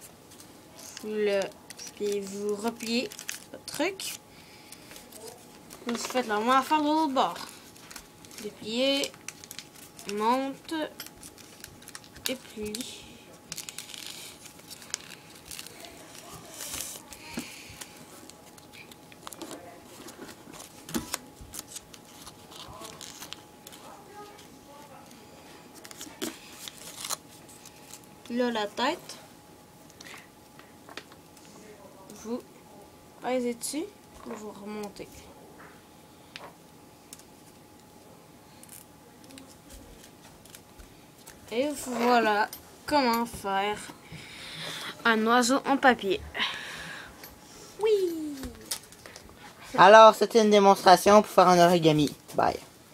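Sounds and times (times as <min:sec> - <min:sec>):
paper being creased and folded: 0:05.0 - 0:12.8, 0:13.5 - 0:24.4, 0:25.8 - 0:28.0.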